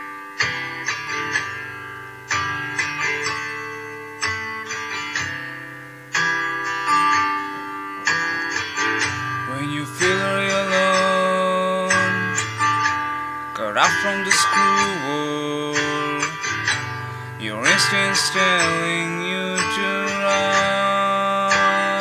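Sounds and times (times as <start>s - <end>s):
guitar picking chords: 0.0s - 22.0s.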